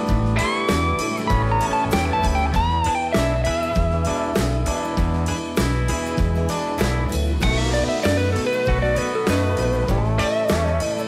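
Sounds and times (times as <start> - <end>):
bass line: 0.0 - 11.0
slide guitar: 0.0 - 11.0
steady drum beat: 0.0 - 11.0.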